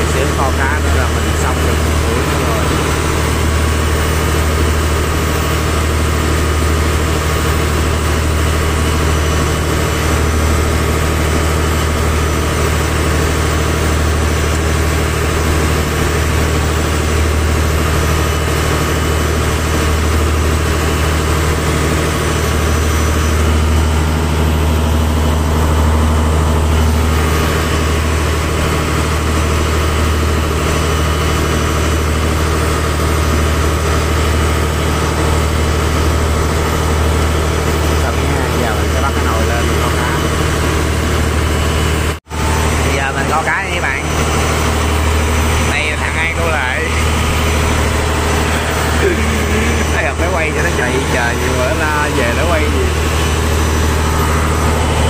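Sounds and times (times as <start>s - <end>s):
boat engine droning: 0.0s - 55.0s.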